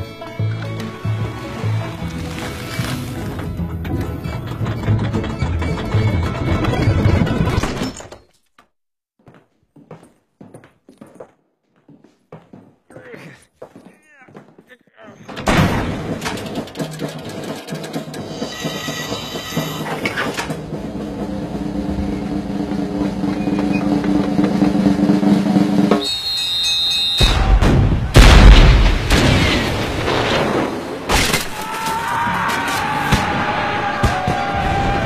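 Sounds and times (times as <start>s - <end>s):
noisy clatter: 3.7s - 8.0s, 15.4s - 26.0s
loud deep cannon boom: 27.3s - 30.7s.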